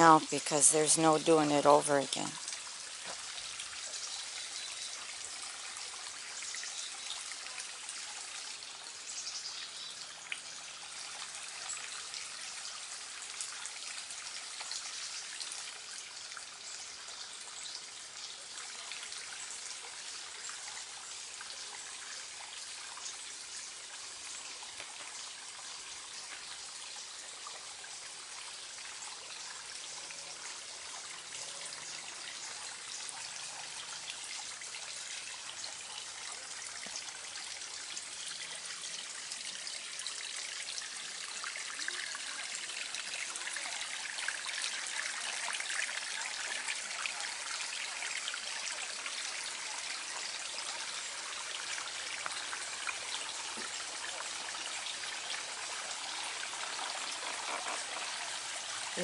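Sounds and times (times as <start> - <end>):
water trickling over stones: 0.0 - 59.0.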